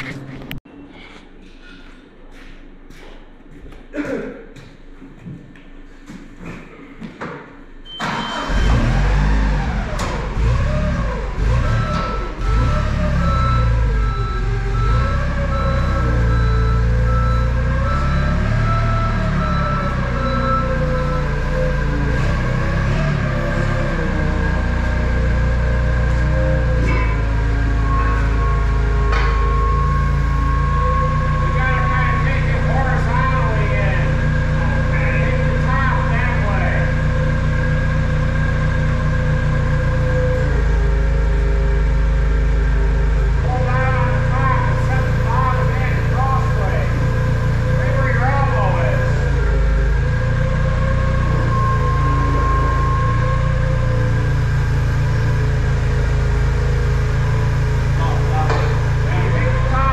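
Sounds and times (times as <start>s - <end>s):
forklift engine running: 7.8s - 59.9s.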